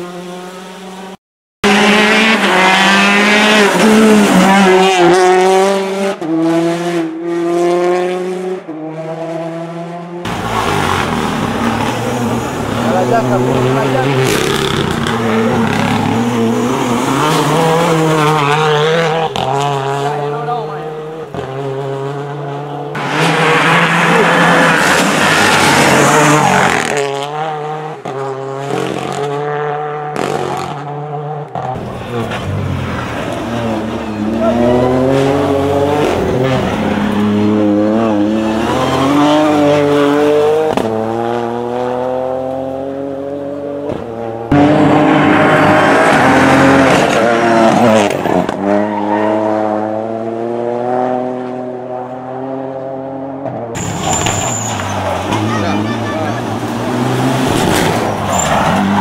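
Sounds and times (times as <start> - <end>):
rally car engines revving: 0.0 - 59.0.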